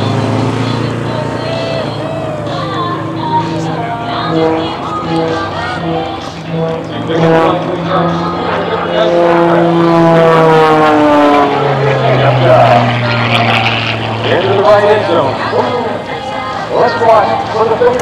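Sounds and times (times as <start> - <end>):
propeller plane engine droning: 0.0 - 18.0.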